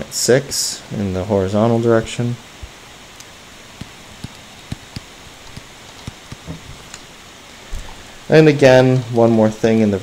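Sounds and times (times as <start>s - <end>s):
steady hiss: 0.0s - 10.0s
stylus tapping on screen: 3.8s - 6.6s.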